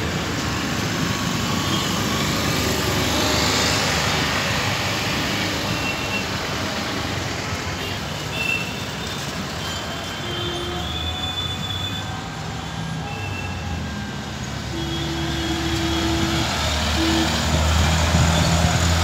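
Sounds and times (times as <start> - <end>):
road traffic passing: 0.0 - 19.0.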